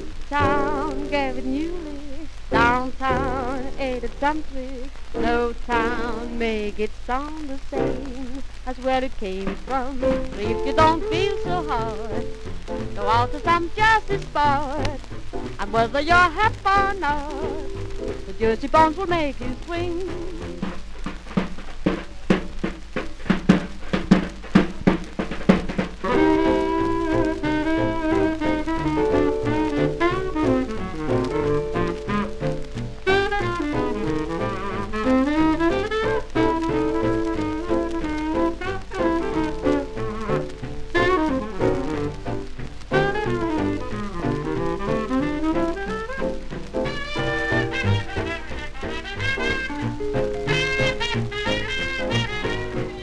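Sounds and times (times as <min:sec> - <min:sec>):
swing band horns with bass: 0:00.0 - 0:53.0
drum kit break: 0:09.2 - 0:53.0.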